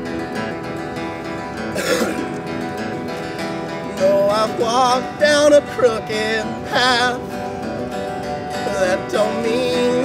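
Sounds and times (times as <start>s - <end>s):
guitars strumming and picking: 0.0s - 10.0s.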